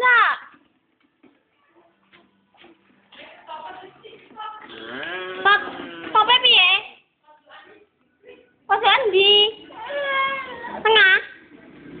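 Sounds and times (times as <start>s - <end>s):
toddler whining and crying: 9.8s - 10.8s.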